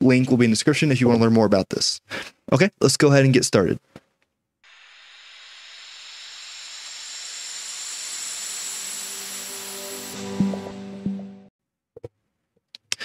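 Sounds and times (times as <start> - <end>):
rising hissing swell: 4.7 - 11.5.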